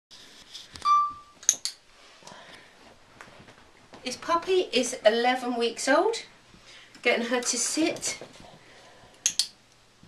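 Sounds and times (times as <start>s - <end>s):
short electronic beep: 0.8s - 1.4s.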